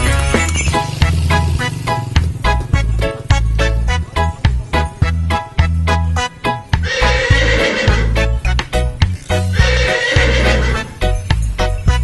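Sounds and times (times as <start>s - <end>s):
horse whinny: 6.8s - 8.2s, 9.5s - 11.0s.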